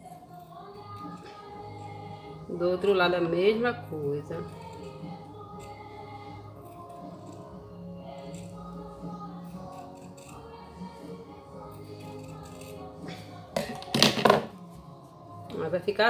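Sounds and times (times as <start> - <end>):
background music: 0.0 - 16.0
scissors clattering on table: 13.6 - 14.5.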